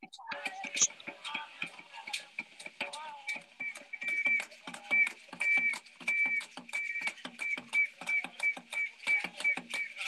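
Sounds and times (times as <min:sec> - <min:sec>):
hand drums fast rhythm: 0:00.2 - 0:10.0.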